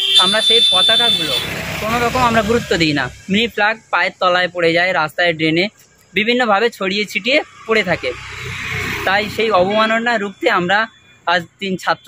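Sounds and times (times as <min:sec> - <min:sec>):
man's voice: 0:00.0 - 0:08.2, 0:09.0 - 0:12.0
vehicle passing by: 0:01.2 - 0:03.4, 0:07.2 - 0:10.6.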